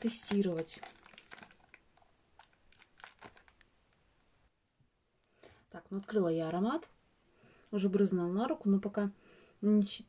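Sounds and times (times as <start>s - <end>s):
packaging crinkling and tearing: 0.0s - 3.7s.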